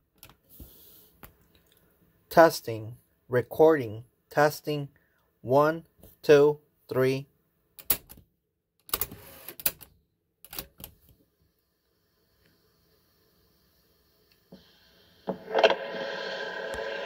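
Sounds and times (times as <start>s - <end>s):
tape hiss: 11.5s - 17.0s
faint hum: 12.0s - 17.0s.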